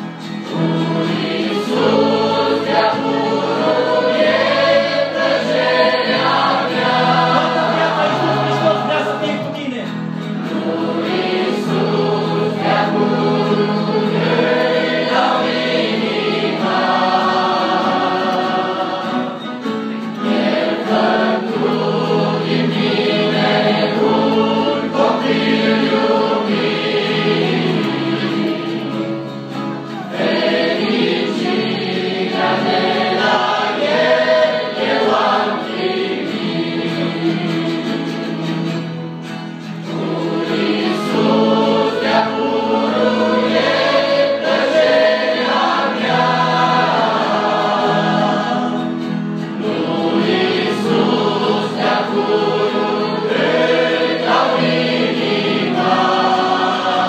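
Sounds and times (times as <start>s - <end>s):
choir singing worship song: 0.0s - 57.0s.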